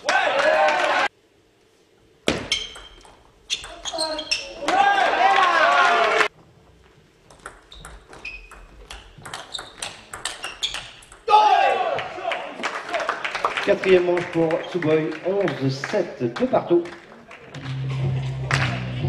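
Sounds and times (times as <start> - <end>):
table tennis ball knocking: 7.3 - 11.3
people talking: 13.6 - 17.6.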